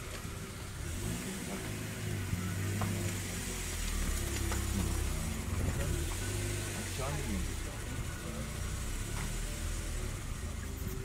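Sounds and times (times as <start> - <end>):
vehicle engine running: 0.0 - 11.0
faint voices: 5.4 - 11.0.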